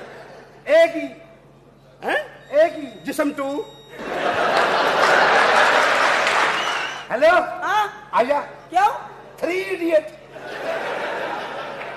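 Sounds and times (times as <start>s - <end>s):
audience applauding: 4.3s - 7.1s.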